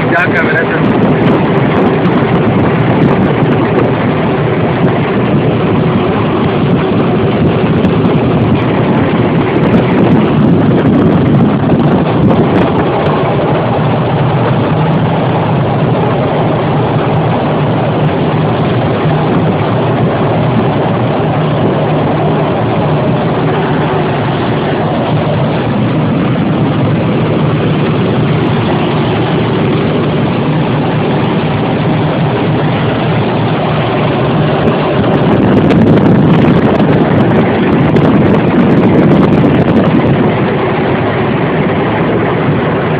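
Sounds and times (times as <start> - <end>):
truck engine running: 0.0 - 42.9
wind and road noise: 0.0 - 42.9.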